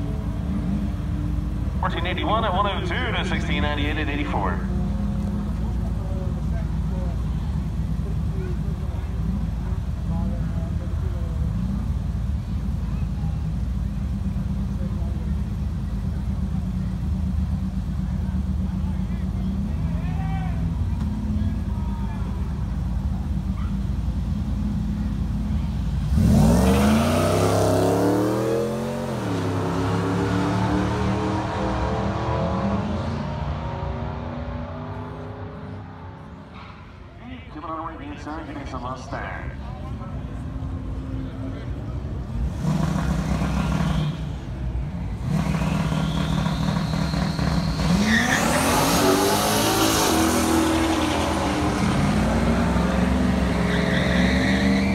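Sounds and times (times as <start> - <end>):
car engines idling: 0.0 - 54.9
engines revving on launch: 25.9 - 37.0, 42.3 - 54.9.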